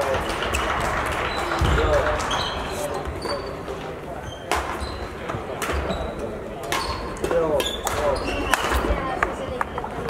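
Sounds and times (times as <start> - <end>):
chatter in hall: 0.0 - 10.0
shoes squeaking on floor: 0.5 - 8.9
rackets hitting shuttlecock: 4.5 - 9.8.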